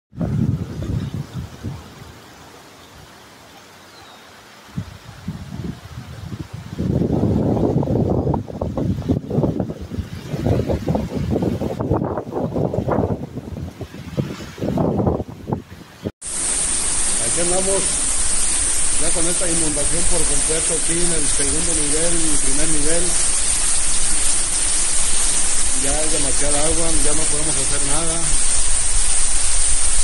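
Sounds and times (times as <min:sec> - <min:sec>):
wind buffeting microphone: 0:00.1 - 0:02.2, 0:04.7 - 0:16.1
rushing floodwater: 0:00.8 - 0:14.8, 0:16.2 - 0:30.0.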